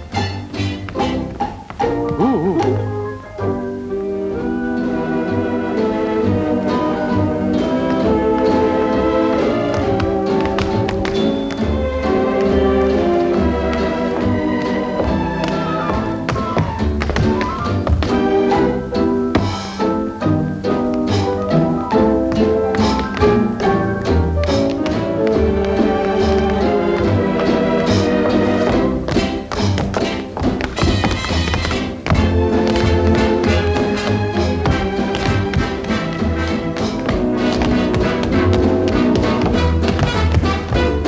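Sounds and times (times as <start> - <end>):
dance band orchestra music: 0.0 - 41.0
tap shoes on hard floor: 0.6 - 2.8, 7.7 - 8.7, 9.4 - 18.3, 19.3 - 19.8, 22.2 - 41.0
dance band orchestra playing: 20.8 - 41.0.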